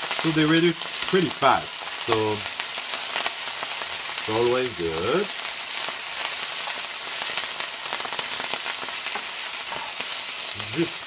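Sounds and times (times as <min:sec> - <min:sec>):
greens sizzling in oil: 0:00.0 - 0:11.0.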